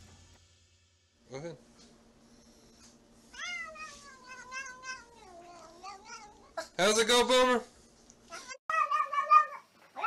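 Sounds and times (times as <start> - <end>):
cat meowing: 3.4 - 6.6, 8.3 - 10.0.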